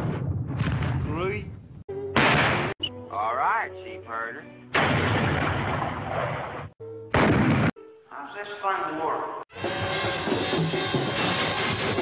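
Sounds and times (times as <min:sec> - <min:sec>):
cartoon cannon blast: 0:00.0 - 0:01.4, 0:02.2 - 0:02.8, 0:04.7 - 0:07.8.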